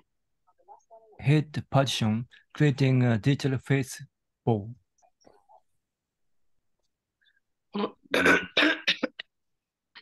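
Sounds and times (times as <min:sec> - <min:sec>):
person clearing throat: 0:08.1 - 0:09.2
person coughing: 0:08.1 - 0:09.2.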